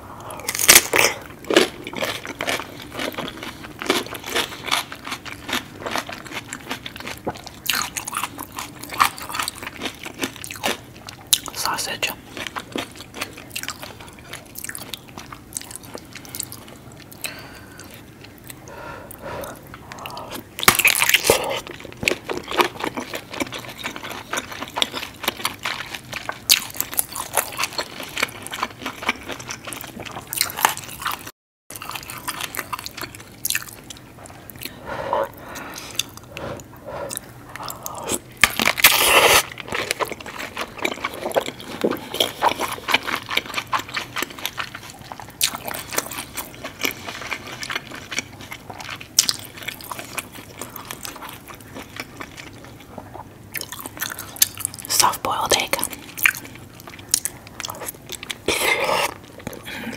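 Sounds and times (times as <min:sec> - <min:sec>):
biting and chewing: 0:00.3 - 0:11.7, 0:12.3 - 0:18.6, 0:19.4 - 0:59.9.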